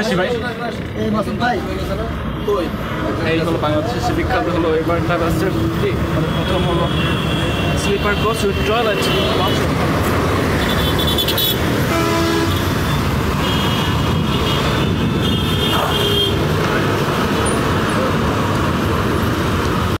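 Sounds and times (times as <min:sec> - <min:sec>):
street traffic: 0:00.0 - 0:20.0.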